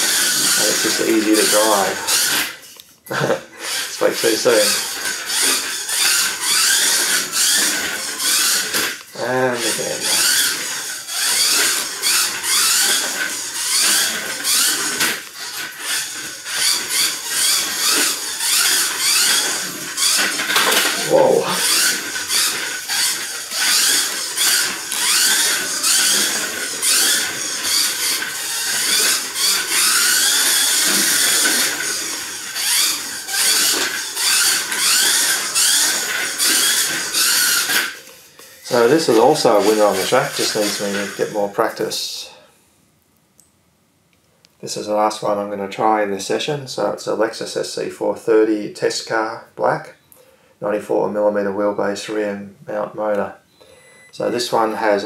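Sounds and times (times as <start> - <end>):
small electric motor whining: 0.0 - 42.4, 53.6 - 55.0.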